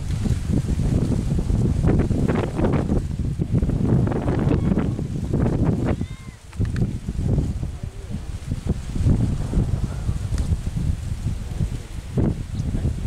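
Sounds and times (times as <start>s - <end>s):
wind buffeting microphone: 0.0s - 13.0s
light rustle: 4.8s - 13.0s.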